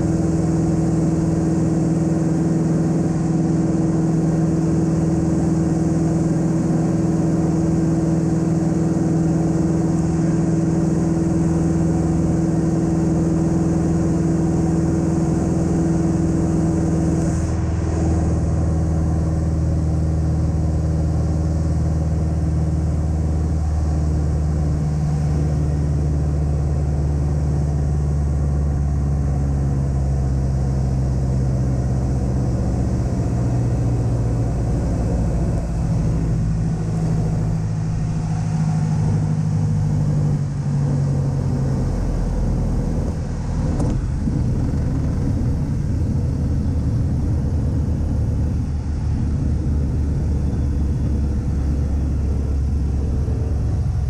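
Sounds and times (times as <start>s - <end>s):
light aircraft engine droning: 0.0s - 54.0s.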